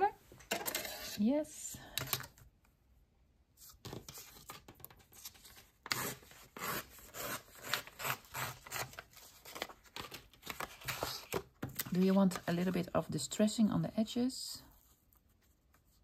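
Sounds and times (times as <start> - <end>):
paper tearing: 5.1 - 9.8.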